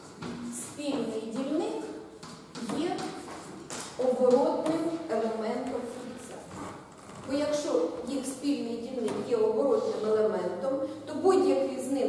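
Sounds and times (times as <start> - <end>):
woman lecturing: 0.3 - 6.6, 7.2 - 12.0.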